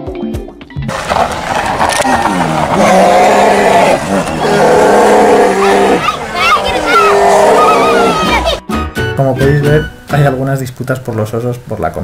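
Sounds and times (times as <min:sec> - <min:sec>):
bears roaring and growling: 0:00.9 - 0:08.6.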